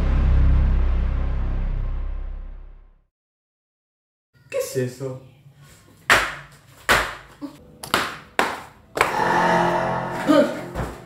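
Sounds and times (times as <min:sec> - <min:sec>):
sustained multi-tone sound: 0:09.0 - 0:11.0.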